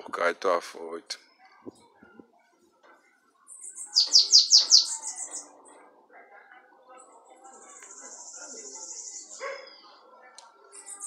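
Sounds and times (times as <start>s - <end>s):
bird singing descending notes: 3.6s - 5.5s.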